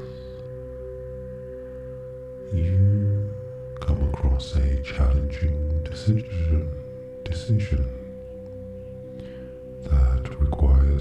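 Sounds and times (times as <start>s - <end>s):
low swell: 0.0s - 9.8s
meditation music ringing tones: 0.0s - 11.0s.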